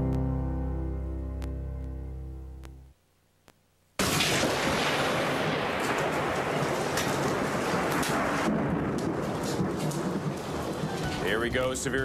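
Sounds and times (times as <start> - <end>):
heavy rain: 4.0 - 12.0
thunder cracks: 4.0 - 12.0.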